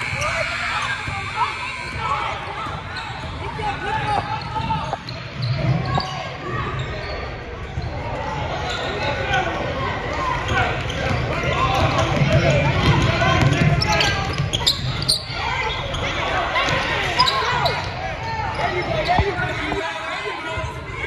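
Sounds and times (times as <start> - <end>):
players and spectators shouting: 0.0 - 21.0.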